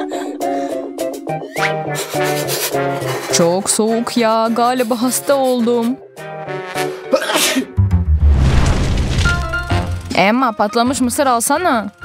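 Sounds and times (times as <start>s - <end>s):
man sneezing: 7.0s - 7.8s
rushing noise with deep rumble: 8.2s - 9.8s.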